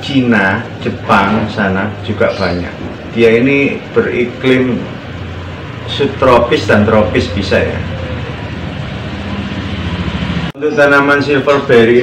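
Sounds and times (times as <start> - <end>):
vehicle engine running: 0.0 - 11.7.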